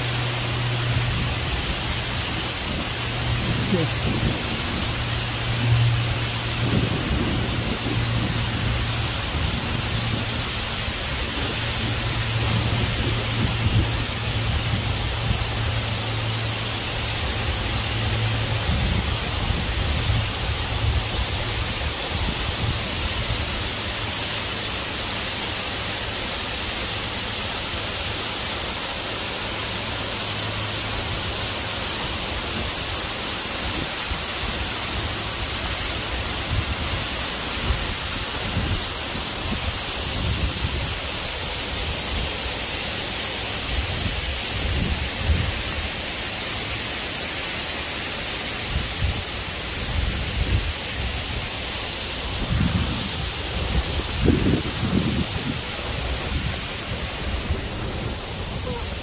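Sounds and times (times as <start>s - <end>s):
waterfall rushing: 0.0s - 59.0s.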